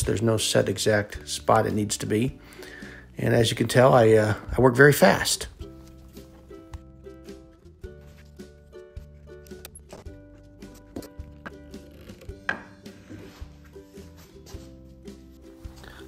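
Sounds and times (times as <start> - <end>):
instrumental music: 4.8 - 16.0.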